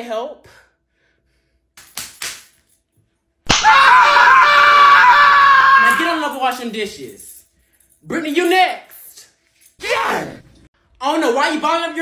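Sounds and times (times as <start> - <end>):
person screaming: 3.5 - 6.3, 9.8 - 10.4.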